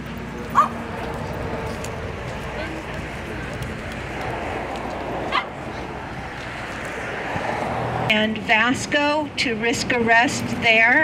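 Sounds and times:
dog yipping: 0.5 - 0.8
crowd murmuring: 0.5 - 6.7.

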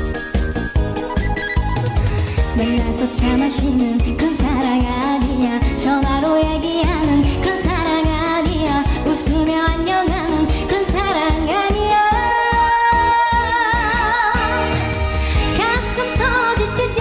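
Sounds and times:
backing track with beat: 0.0 - 17.0
woman singing into microphone: 2.4 - 17.0.

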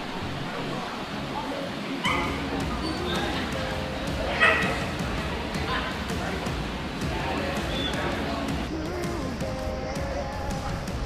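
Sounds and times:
background pop music: 2.0 - 11.0
dog barking: 4.4 - 4.8.

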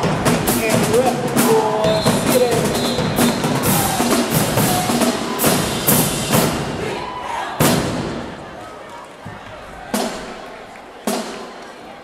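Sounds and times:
drum line and brass hits: 0.0 - 8.6, 9.2 - 11.6.

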